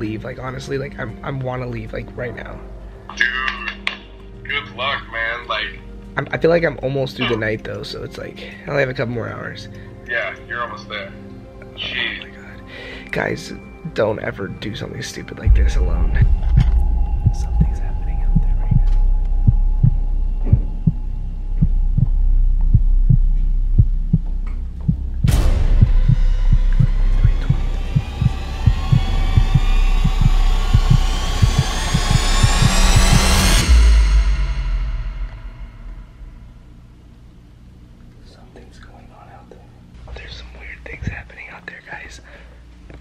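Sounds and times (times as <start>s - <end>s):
rising sweep: 15.4s - 24.2s, 24.9s - 36.9s
heartbeat thumps: 15.4s - 36.7s
low drone: 15.4s - 37.8s.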